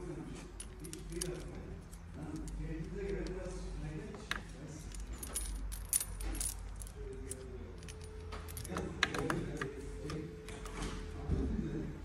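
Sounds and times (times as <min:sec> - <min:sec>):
metal chain clinking: 0:00.4 - 0:09.6.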